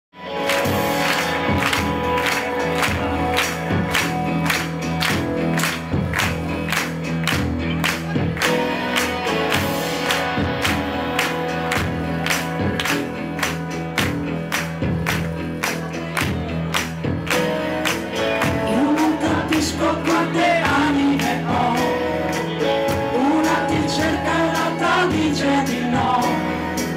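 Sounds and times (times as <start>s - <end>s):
live pop band playing: 0.2s - 26.9s
steady drum beat: 0.5s - 26.9s.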